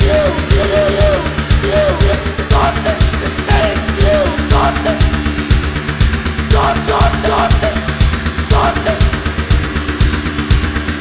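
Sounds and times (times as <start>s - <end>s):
kick drum beat: 0.0s - 10.7s
falling high synth sweep: 0.0s - 11.0s
pulsing synth bass line: 0.0s - 11.0s.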